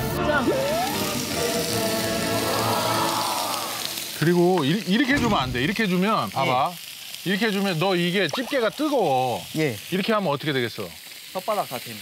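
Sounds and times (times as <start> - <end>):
background music: 0.0 - 4.3
meat sizzling on a grill: 0.0 - 12.0.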